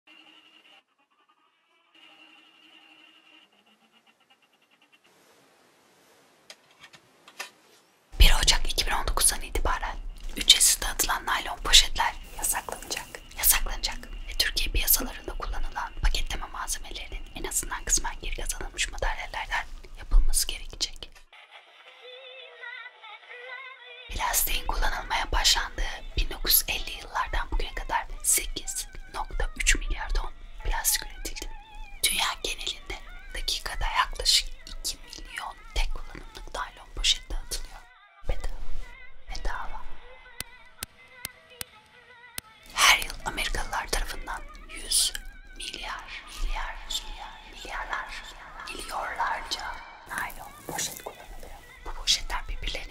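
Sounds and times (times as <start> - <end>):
woman whispering: 8.2 - 21.3, 24.1 - 40.1, 42.7 - 52.9
music: 21.2 - 32.1, 32.7 - 52.9.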